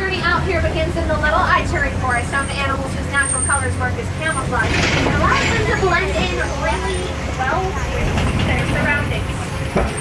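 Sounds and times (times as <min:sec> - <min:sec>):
people's voices: 0:00.0 - 0:10.0
truck engine rumbling: 0:00.0 - 0:10.0.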